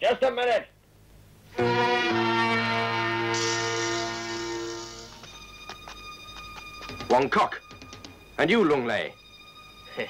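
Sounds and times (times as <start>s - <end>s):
sustained dramatic orchestral chord: 1.6s - 10.0s.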